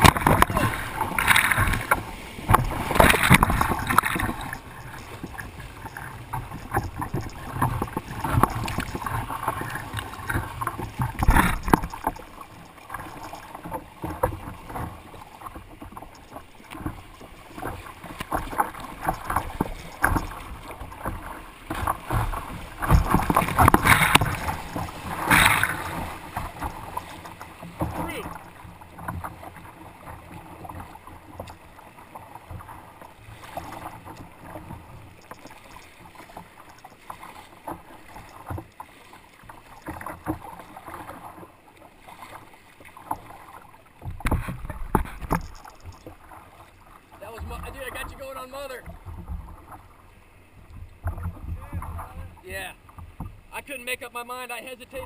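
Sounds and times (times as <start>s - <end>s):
creek water rushing and splashing: 0.0s - 55.0s.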